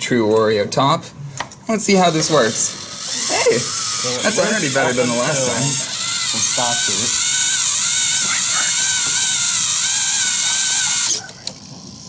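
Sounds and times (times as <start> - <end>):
small electric motors whining: 1.9 - 12.0.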